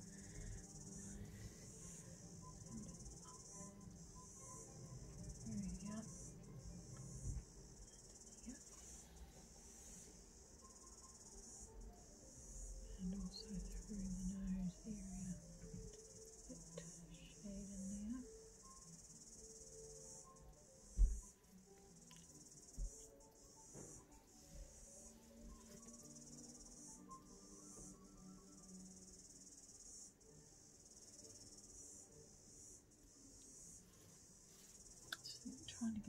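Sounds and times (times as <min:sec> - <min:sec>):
faint soft music: 0:00.0 - 0:36.0
high-pitched insect chirring: 0:00.0 - 0:36.0
dull thump: 0:21.0 - 0:21.2.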